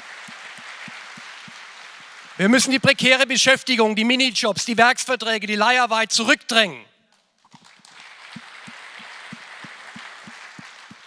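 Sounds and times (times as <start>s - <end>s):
audience applauding: 0.0s - 2.8s, 7.5s - 11.0s.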